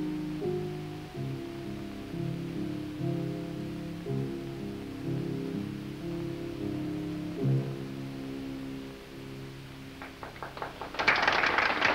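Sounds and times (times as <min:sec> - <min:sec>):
applause: 0:10.0 - 0:11.9.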